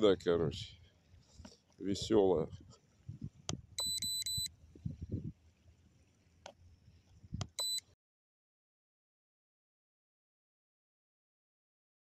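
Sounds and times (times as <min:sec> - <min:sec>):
short high electronic beeps: 0:03.8 - 0:04.5, 0:07.6 - 0:07.9.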